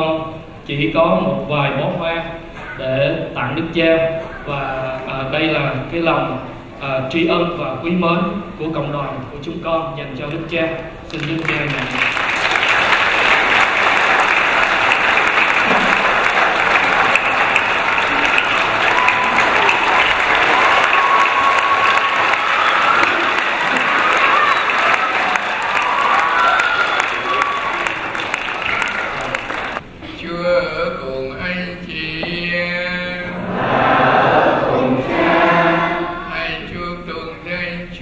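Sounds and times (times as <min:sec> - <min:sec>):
congregation applauding: 0:11.0 - 0:29.8.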